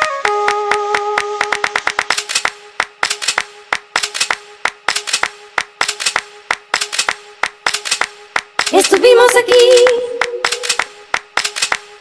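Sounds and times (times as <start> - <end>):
clap-like electronic percussion: 0.0 - 12.0.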